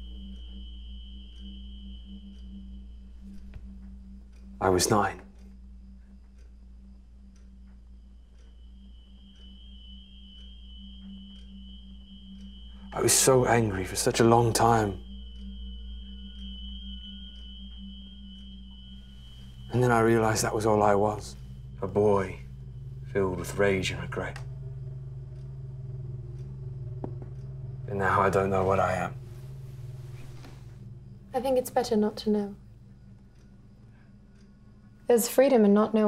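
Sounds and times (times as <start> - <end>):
low pulsing hum: 0.0 - 36.0
low steady drone: 0.0 - 36.0
thin high held tone: 0.0 - 36.0.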